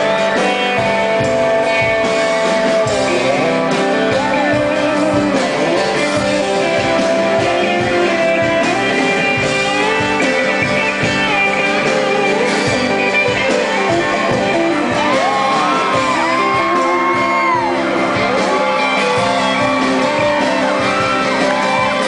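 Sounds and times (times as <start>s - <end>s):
country-rock band playing: 0.0s - 22.0s
electric guitar lead bending notes: 0.0s - 22.0s.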